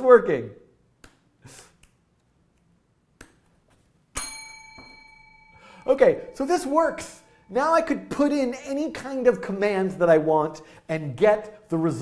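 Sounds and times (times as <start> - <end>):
bell-like ping: 4.2 - 7.6.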